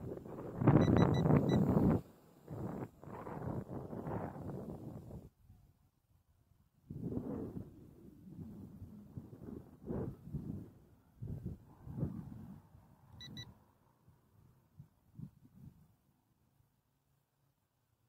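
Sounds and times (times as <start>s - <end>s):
wind buffeting microphone: 0.0s - 5.3s, 6.8s - 13.4s
quick high beeps: 0.8s - 1.8s, 13.2s - 13.5s.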